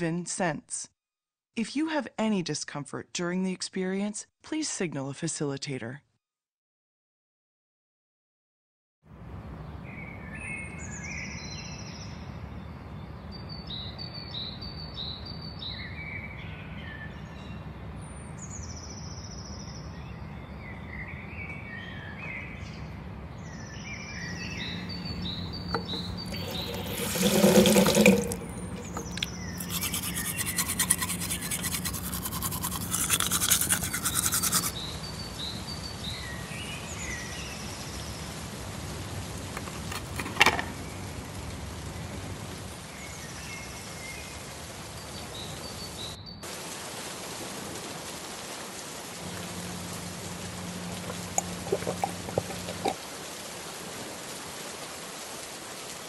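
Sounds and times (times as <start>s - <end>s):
birds chirping: 18.4s - 33.1s, 50.5s - 53.0s
tap running into basin: 25.7s - 33.0s, 51.0s - 53.0s
toothbrush scrubbing: 25.8s - 34.8s, 51.1s - 53.0s.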